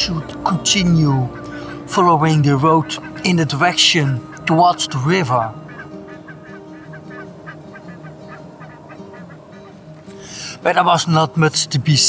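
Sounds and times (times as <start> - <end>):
low steady drone: 0.0 - 10.9
geese honking: 0.0 - 12.0.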